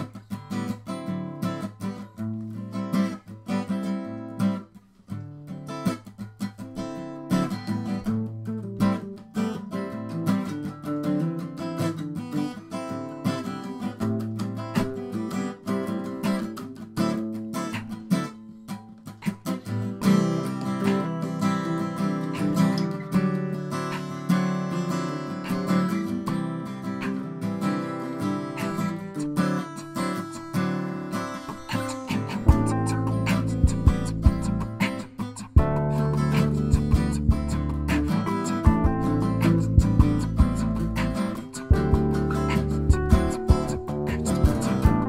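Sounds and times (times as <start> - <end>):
acoustic guitar chords: 0.0 - 45.0.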